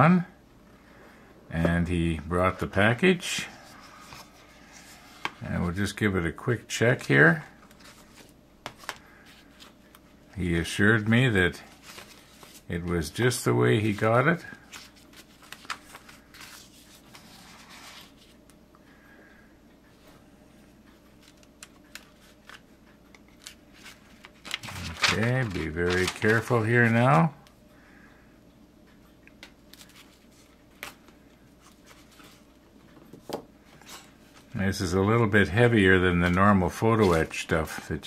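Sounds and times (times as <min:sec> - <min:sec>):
paper sheets rustling: 0:07.0 - 0:10.0, 0:10.7 - 0:18.4, 0:23.2 - 0:27.3, 0:29.7 - 0:32.6, 0:33.8 - 0:38.0.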